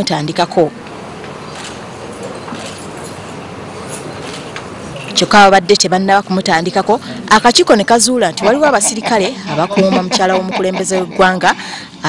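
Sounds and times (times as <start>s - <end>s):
busy room background noise: 0.0s - 12.0s
knocks and rustles of people moving: 0.8s - 5.3s.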